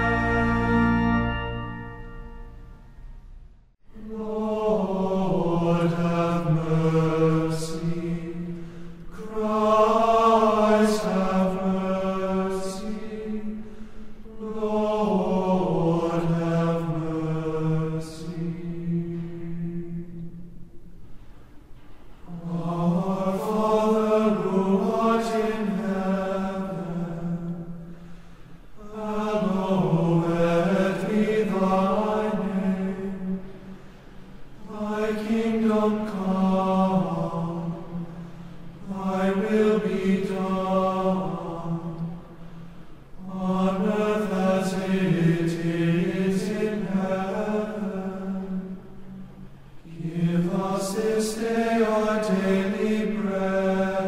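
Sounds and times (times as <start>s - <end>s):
person chanting a prayer: 49.9s - 54.0s.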